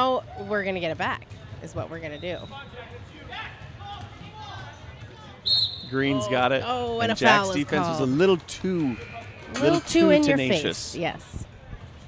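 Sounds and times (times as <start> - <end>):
faint voices of players and spectators: 0.0 - 12.0.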